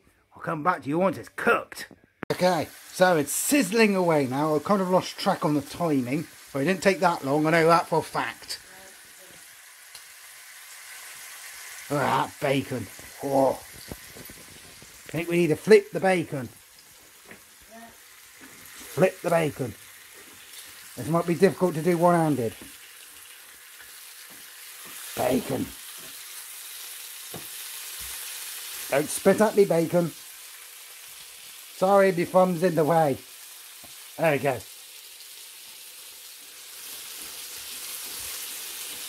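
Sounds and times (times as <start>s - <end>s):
bacon sizzling in a frying pan: 2.3s - 39.0s.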